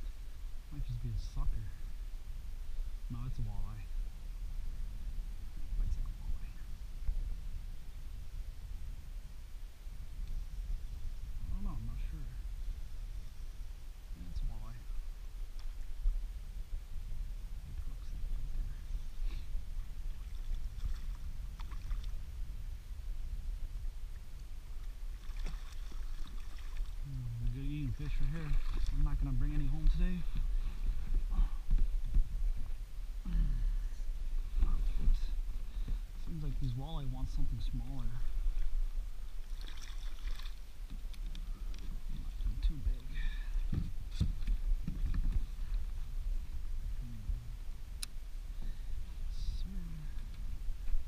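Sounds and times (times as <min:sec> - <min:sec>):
steady low rumble: 0:00.0 - 0:51.0
wind buffeting the microphone: 0:00.0 - 0:51.0
fish splashing in water: 0:25.2 - 0:27.0, 0:39.4 - 0:40.7.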